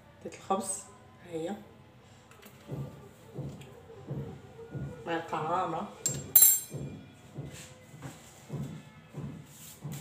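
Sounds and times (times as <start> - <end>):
metallic clink of kitchen utensils: 6.0 - 6.8.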